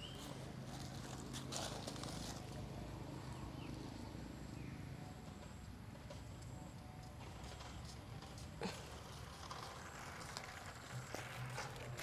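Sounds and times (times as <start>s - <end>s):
faint bird chirp: 0.0s - 0.4s.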